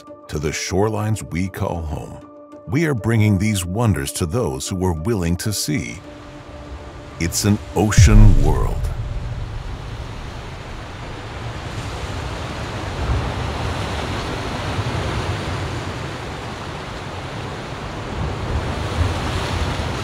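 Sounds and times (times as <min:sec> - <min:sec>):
ocean surf washing: 0:07.3 - 0:15.0.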